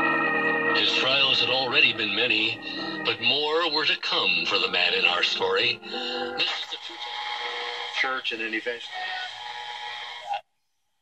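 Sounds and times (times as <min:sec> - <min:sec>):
radio static hiss: 0:04.1 - 0:10.4.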